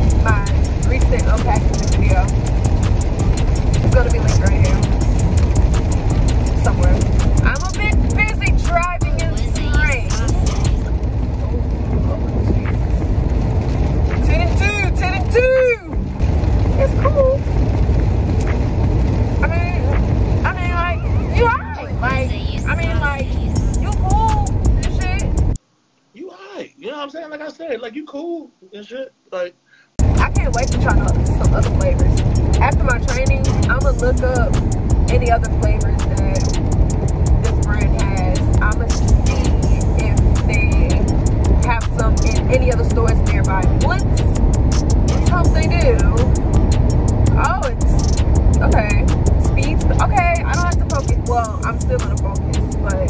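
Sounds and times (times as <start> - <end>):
background music with voice: 0.0 - 11.0, 20.4 - 25.6, 30.0 - 53.0
car cabin rumble: 0.0 - 25.6, 30.0 - 53.0.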